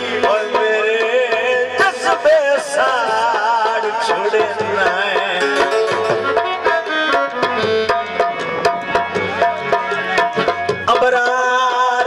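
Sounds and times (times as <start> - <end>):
harmonium melody: 0.0 - 12.0
tabla rhythm: 0.0 - 12.0.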